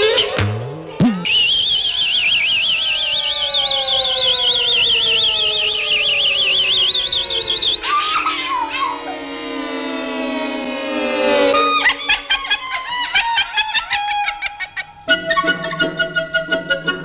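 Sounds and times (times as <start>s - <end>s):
slowly falling tone: 0.0s - 17.0s
high warbling whistle: 1.1s - 13.6s.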